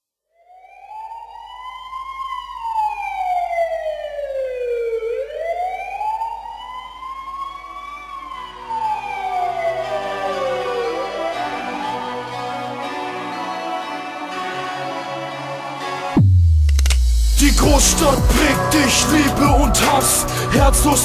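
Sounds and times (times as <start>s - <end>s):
wailing siren: 0.3s - 16.3s, 17.3s - 21.0s
music with low notes: 16.2s - 21.0s.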